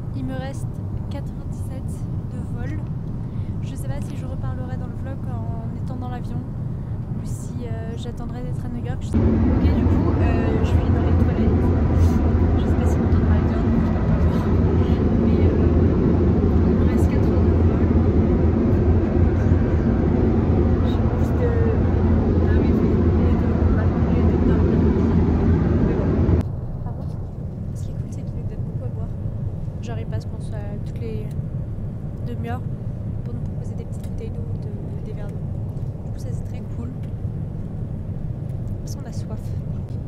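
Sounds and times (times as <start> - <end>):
airliner engine rumble: 0.0 - 40.0.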